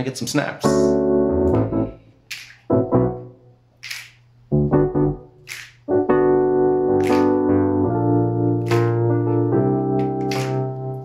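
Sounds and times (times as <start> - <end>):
digital piano chords: 0.5 - 3.6, 4.5 - 11.0
finger snaps: 2.3 - 2.7, 3.8 - 4.3, 5.4 - 5.9, 7.0 - 7.3, 8.6 - 9.0, 10.0 - 10.6.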